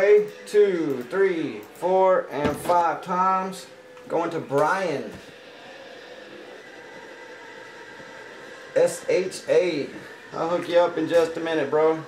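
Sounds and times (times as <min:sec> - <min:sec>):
faint constant tones: 0:00.0 - 0:12.0
steady background hum: 0:00.0 - 0:12.0.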